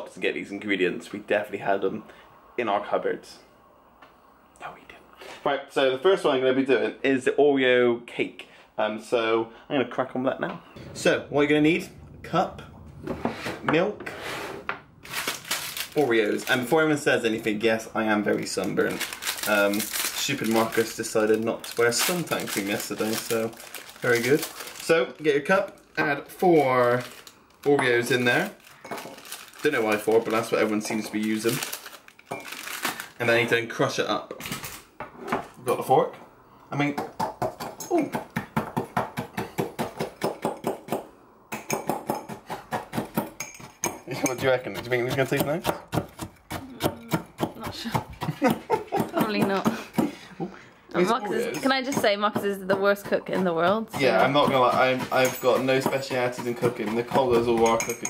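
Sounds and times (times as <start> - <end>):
plastic packet crinkling: 15.0 - 16.8, 18.3 - 33.5.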